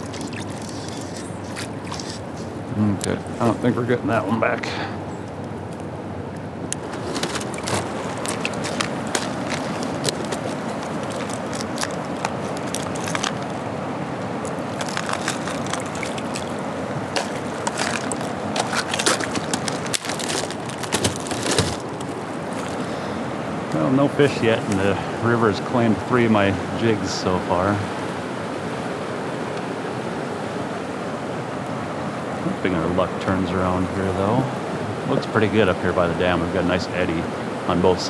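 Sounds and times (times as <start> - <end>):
plastic lure pack handled: 0.0 - 2.6, 6.8 - 13.6, 14.4 - 22.9
river current rushing: 0.0 - 38.0.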